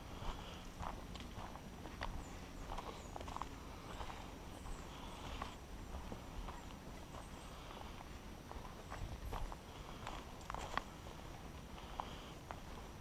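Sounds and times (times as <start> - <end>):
footsteps on dry leaves: 0.0 - 13.0.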